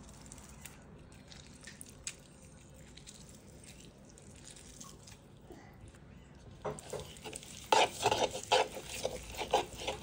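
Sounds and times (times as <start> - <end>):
spoon stirring thick marinade: 6.7 - 10.0
spoon scraping bowl: 6.8 - 10.0.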